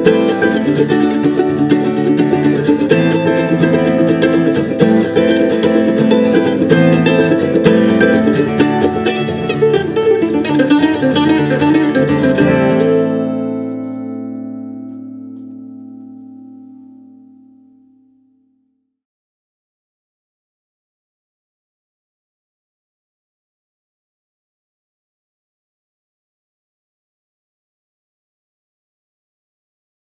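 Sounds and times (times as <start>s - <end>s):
acoustic guitar: 0.0s - 18.3s
mandolin: 0.0s - 18.4s.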